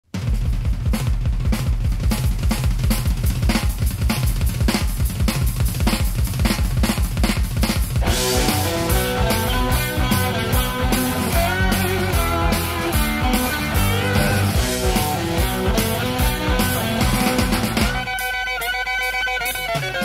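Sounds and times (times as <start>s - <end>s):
rock drum kit beat: 0.0s - 20.0s
rock band with guitar: 1.6s - 20.0s.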